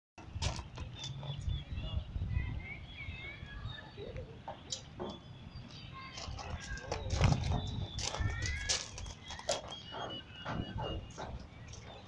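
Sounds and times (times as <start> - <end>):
wind rumble on microphone: 0.2 - 4.2, 5.4 - 9.3
birds chirping: 0.2 - 12.0
sharp knocks: 9.5 - 12.0.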